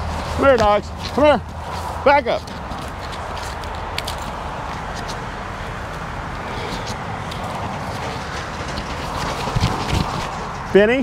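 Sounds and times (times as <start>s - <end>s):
light clicks and rustles: 0.2s - 5.2s.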